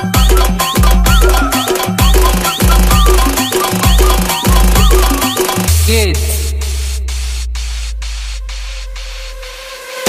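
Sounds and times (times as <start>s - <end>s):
deep sub-bass note: 5.7s - 9.6s.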